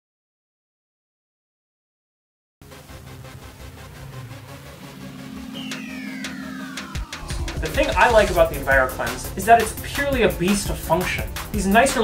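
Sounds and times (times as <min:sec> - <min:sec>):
downward sweeping whistle tones: 0:04.9 - 0:09.4.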